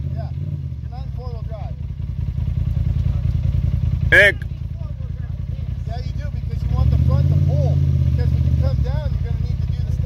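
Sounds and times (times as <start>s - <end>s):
engine running at low revs: 0.0s - 10.0s.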